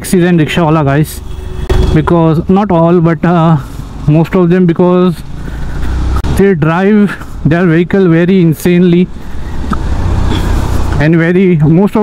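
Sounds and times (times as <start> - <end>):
city traffic: 0.0 - 12.0
motorcycle road noise: 0.0 - 12.0.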